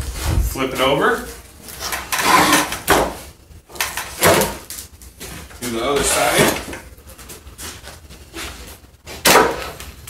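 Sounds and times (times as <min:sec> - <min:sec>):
wooden pallet scraping concrete: 0:01.7 - 0:03.3, 0:04.0 - 0:09.8.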